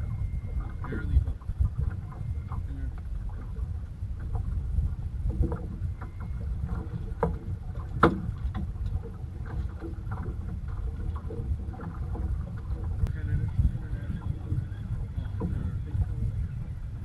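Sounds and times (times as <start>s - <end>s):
steady low rumble: 0.0s - 17.0s
water lapping against boat hull: 0.0s - 17.0s.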